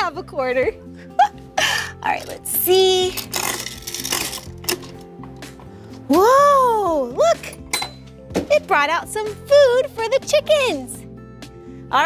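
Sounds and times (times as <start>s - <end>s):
background music: 0.0s - 12.0s
coin dropping into dispenser: 3.1s - 5.0s.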